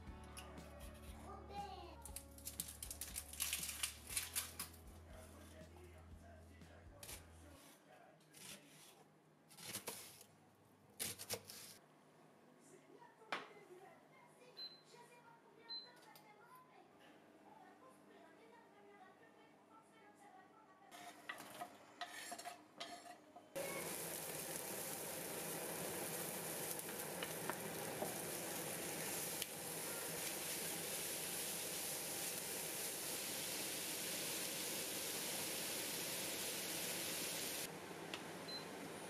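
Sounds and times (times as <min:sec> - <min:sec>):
wooden spoon stirring: 0:21.0 - 0:23.2
meat and onion sizzling: 0:23.6 - 0:39.0.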